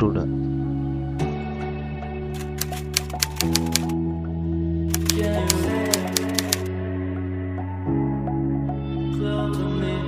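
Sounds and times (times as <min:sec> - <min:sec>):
background music sustained chords: 0:00.0 - 0:10.0
typewriter key clicks: 0:02.4 - 0:03.9, 0:04.9 - 0:06.7.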